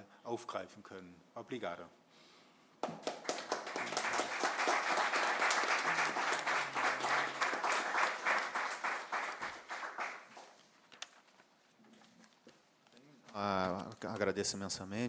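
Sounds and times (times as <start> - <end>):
audience applause: 2.8 - 10.6.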